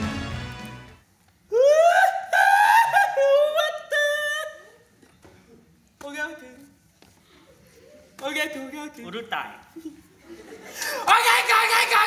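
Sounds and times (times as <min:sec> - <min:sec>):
man's falsetto cry: 0:01.5 - 0:04.8.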